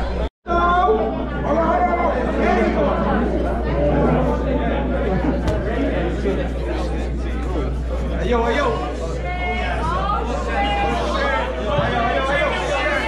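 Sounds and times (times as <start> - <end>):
people chattering in hall: 0.0 - 13.0
steady low hum: 1.1 - 13.0.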